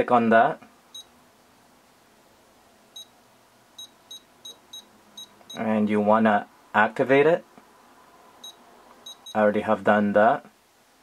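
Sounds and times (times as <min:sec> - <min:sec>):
short high-pitched key beeps: 0:03.8 - 0:05.6, 0:08.4 - 0:09.4.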